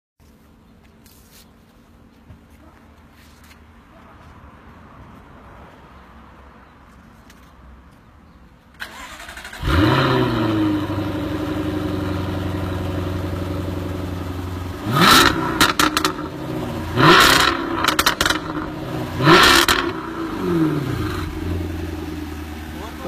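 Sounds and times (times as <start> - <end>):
car engine cranking: 8.8 - 13.1
car engine revving and idling: 8.9 - 23.0.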